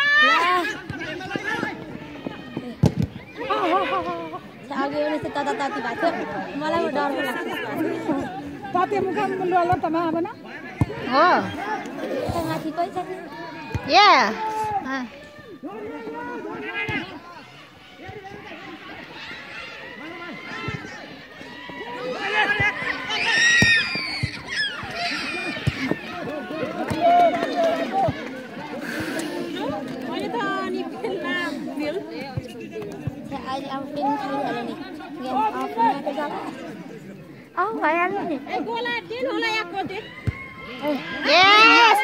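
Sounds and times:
people shouting and chattering: 0.0 - 42.0
spectators talking and calling out: 0.0 - 42.0.

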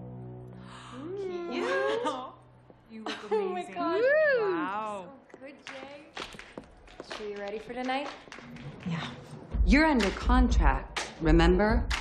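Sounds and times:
young women exclaiming excitedly: 3.8 - 4.7.

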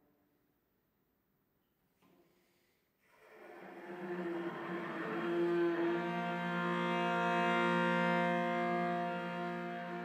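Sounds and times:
bowed cello sustained note: 3.8 - 10.0.

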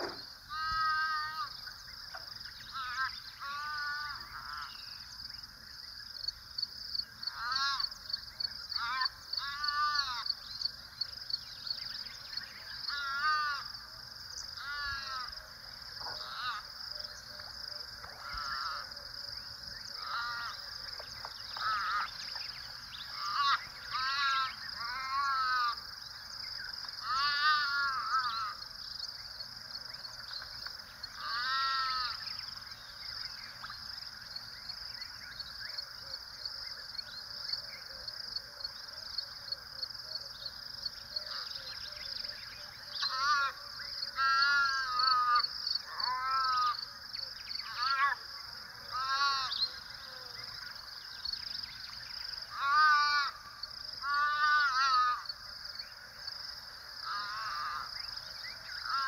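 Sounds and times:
harsh animal calls: 27.0 - 28.6, 31.2 - 32.2.

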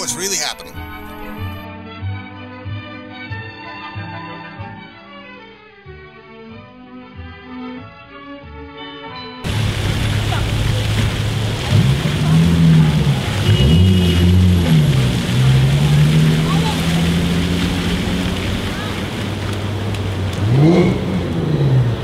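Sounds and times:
fountain jets spraying on pavement: 0.0 - 1.5, 9.4 - 22.0
vehicle motor hum: 0.0 - 1.6, 9.4 - 22.0.

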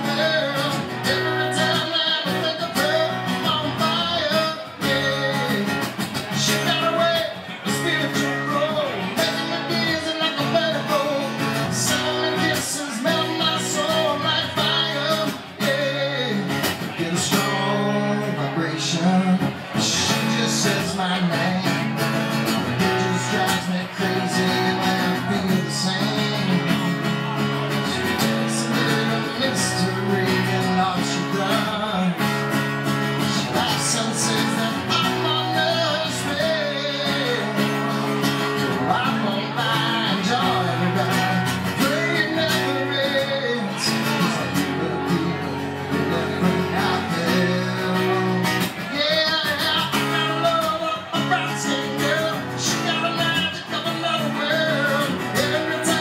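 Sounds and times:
acoustic guitar strumming: 0.0 - 56.0
man singing: 0.0 - 56.0.

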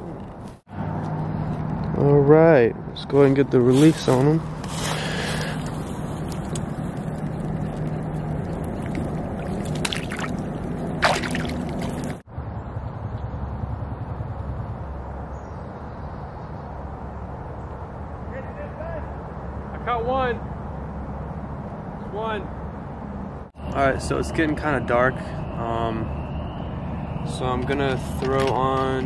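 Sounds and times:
outdoor background noise: 0.0 - 29.0
water sloshing and splashing: 4.7 - 12.2
voices: 18.3 - 20.5, 22.0 - 22.5, 23.6 - 26.2, 27.2 - 29.0.

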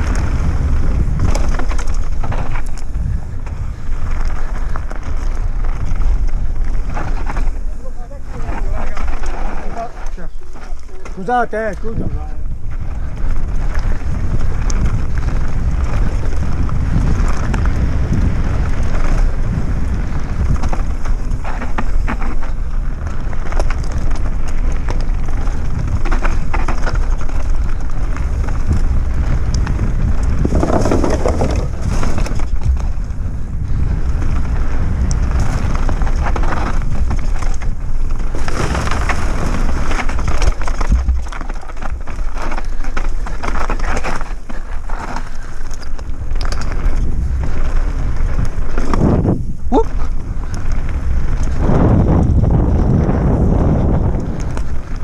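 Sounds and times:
bike rattling: 0.0 - 55.0
tyres crunching over dirt: 0.0 - 55.0
tyres on wooden boardwalk: 0.0 - 55.0
wind rumble on microphone: 0.0 - 55.0.

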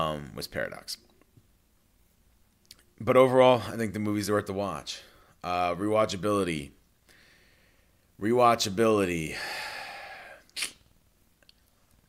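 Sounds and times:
man exhaling: 9.3 - 10.8
nose sniff: 10.4 - 10.8.

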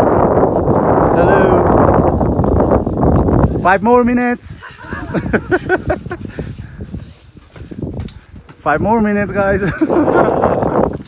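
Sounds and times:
wind buffeting microphone: 0.0 - 11.0
person laughing: 4.6 - 6.4, 9.6 - 11.0.

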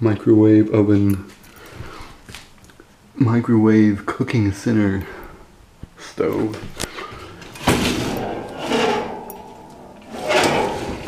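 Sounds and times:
metal door clunk: 7.4 - 11.0
metal scraping and rattling: 7.4 - 11.0.

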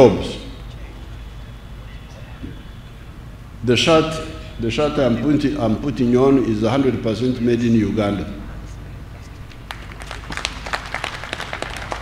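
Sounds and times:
audience applauding: 9.6 - 12.0.

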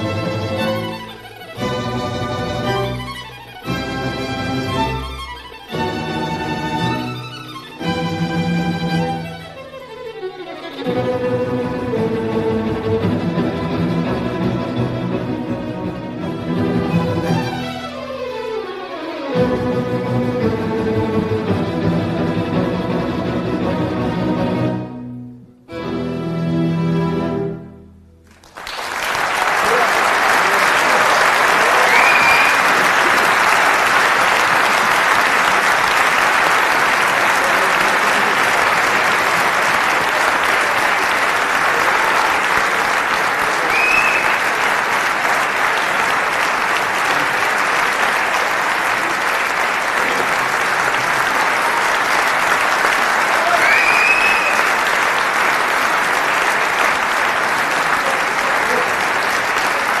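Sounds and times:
audience applauding: 28.2 - 60.0.

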